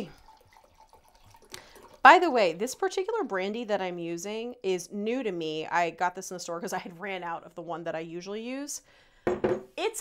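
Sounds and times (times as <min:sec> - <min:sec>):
liquid trickling: 0:00.0 - 0:03.3.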